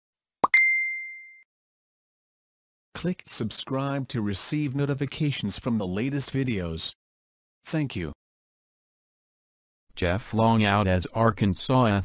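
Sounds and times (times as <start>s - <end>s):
bright high ding: 0.4s - 1.4s.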